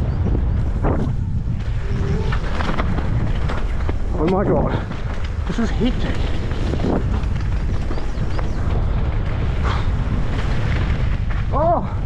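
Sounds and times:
wind buffeting microphone: 0.0s - 12.0s
tyres over loose stones: 1.6s - 12.0s.

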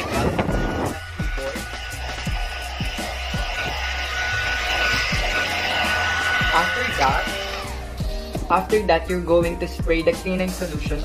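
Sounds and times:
air blower hissing: 0.0s - 8.6s.

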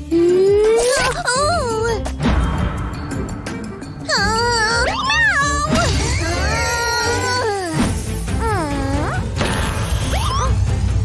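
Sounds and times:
cartoon background music: 0.0s - 11.0s
cartoon cat meowing: 4.1s - 7.6s.

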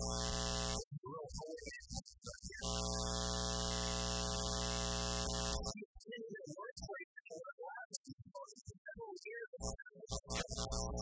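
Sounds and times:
electrical mains hum: 0.0s - 5.8s, 9.6s - 11.0s.

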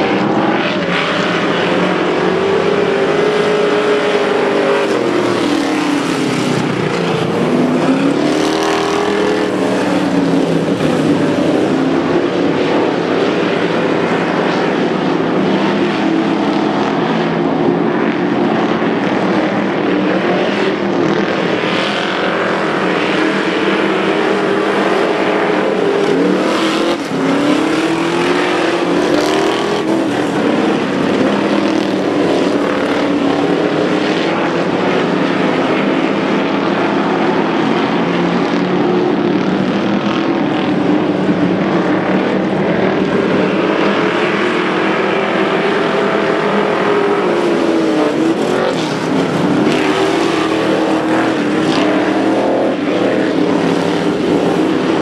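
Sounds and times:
race car engines: 0.0s - 55.0s.

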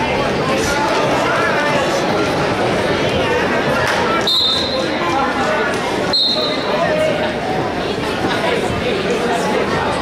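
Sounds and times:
crowd chatter: 0.0s - 10.0s
referee's whistle blasts: 4.2s - 4.9s, 6.1s - 6.7s.

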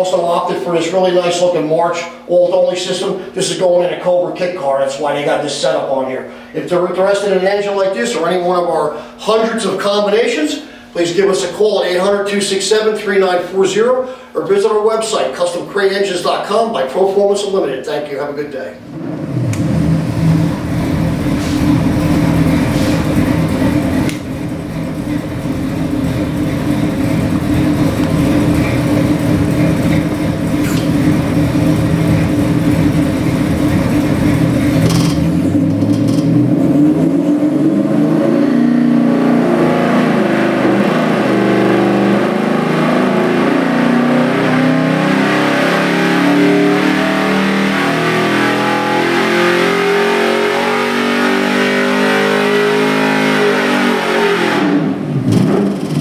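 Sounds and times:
engine running and revving: 18.9s - 56.0s.

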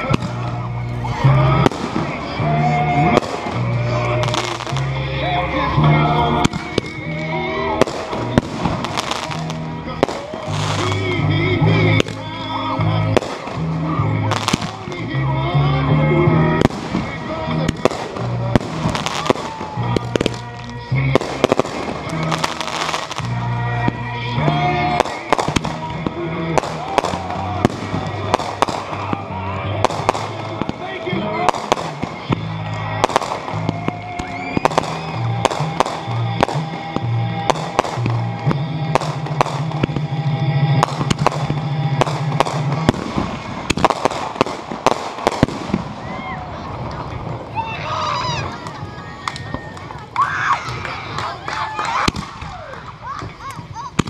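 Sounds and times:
fireworks bangs and crackles: 0.0s - 15.4s, 16.2s - 54.0s
music playing: 0.0s - 53.1s.

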